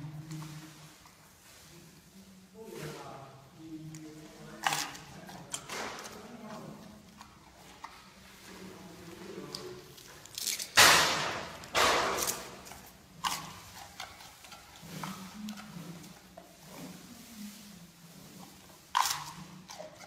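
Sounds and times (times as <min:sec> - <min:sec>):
crunching and chewing: 0:09.4 - 0:17.0, 0:18.6 - 0:20.0.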